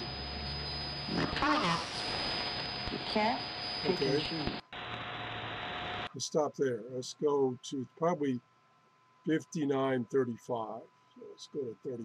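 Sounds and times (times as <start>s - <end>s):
constant whistle tone: 0.0s - 4.6s, 5.9s - 8.4s, 9.3s - 12.0s
radio static hiss: 0.0s - 8.4s, 9.3s - 12.0s
voice on radio: 6.2s - 8.4s, 9.3s - 12.0s.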